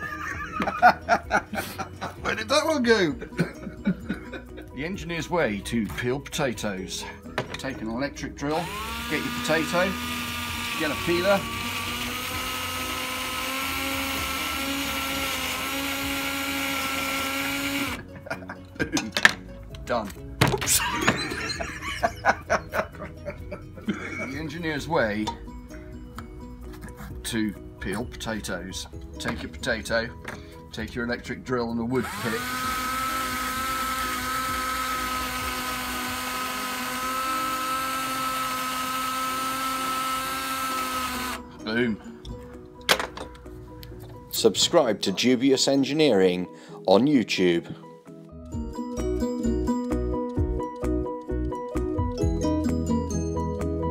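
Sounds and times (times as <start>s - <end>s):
cordless drill running: 8.5s - 18.1s, 32.0s - 41.4s.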